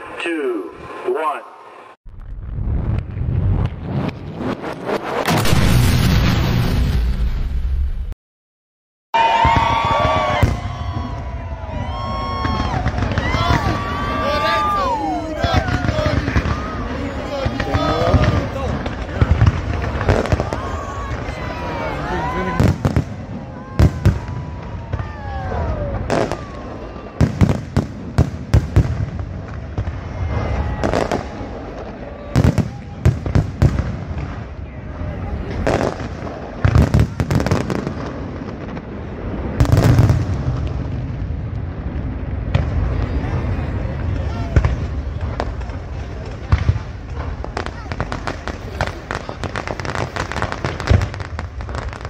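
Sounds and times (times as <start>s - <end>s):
fireworks bangs and crackles: 2.1s - 8.1s, 9.2s - 52.0s
low rumble: 2.1s - 8.2s.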